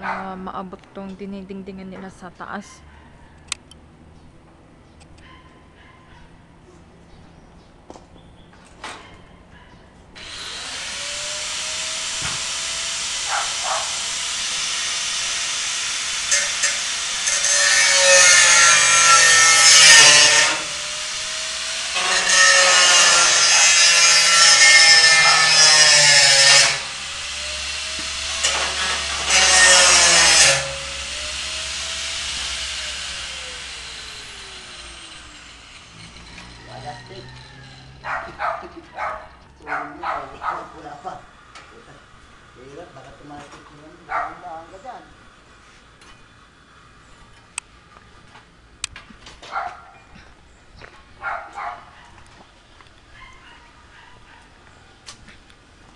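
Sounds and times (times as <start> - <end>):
power cutter motor whine: 10.2 - 38.5.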